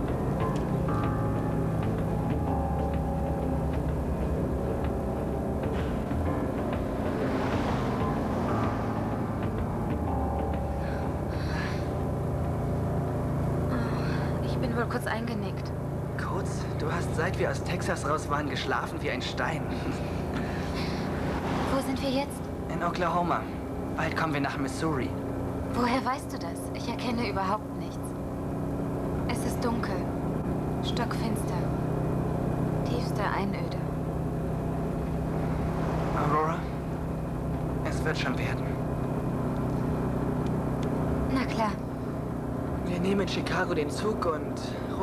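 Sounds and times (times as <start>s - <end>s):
bus engine drone: 0.0s - 45.0s
road rumble: 0.0s - 45.0s.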